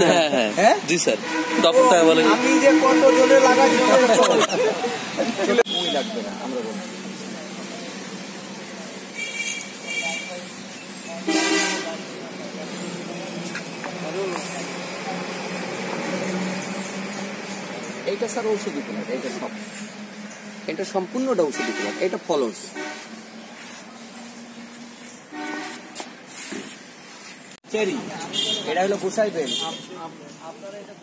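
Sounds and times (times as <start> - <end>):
vehicle horn toot: 1.1 - 4.5, 5.5 - 6.4, 9.1 - 10.5, 11.2 - 12.1, 21.3 - 23.2, 25.3 - 26.0, 28.3 - 30.0.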